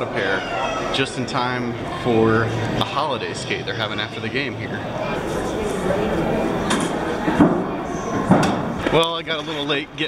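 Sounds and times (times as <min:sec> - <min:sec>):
murmur of indistinct voices: 0:00.0 - 0:10.0.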